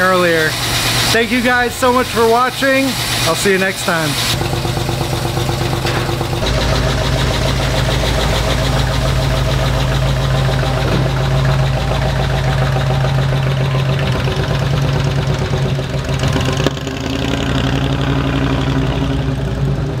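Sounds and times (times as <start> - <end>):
car engine running: 0.0 - 20.0.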